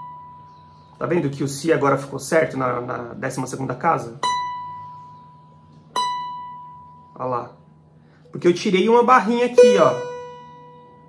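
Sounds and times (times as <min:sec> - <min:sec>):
plucked string high note: 0:09.5 - 0:11.0.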